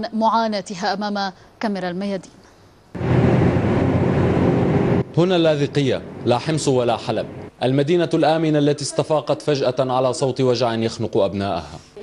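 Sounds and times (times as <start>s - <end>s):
wind noise: 3.0s - 5.2s
vehicle road rumble: 3.0s - 7.5s.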